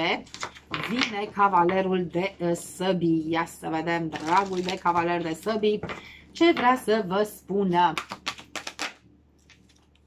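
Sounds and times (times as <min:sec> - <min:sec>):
cards shuffled by hand: 0:08.0 - 0:10.0.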